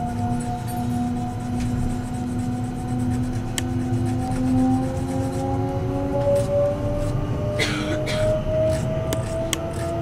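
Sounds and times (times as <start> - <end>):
train motors whining: 0.0 - 10.0.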